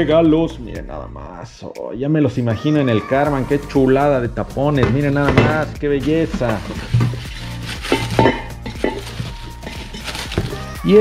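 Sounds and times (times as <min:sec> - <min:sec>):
plastic film crinkling: 0:06.2 - 0:11.0.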